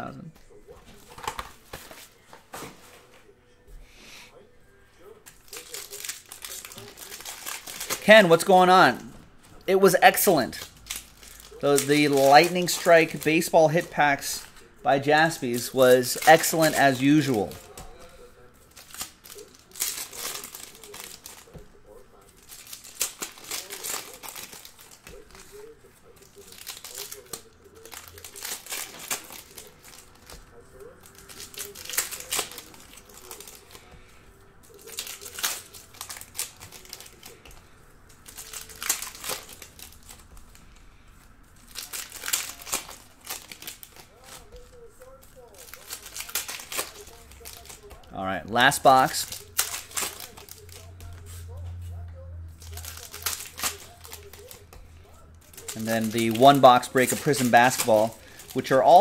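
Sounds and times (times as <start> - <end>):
foil wrappers crinkling: 0.4 - 3.2, 5.0 - 59.0.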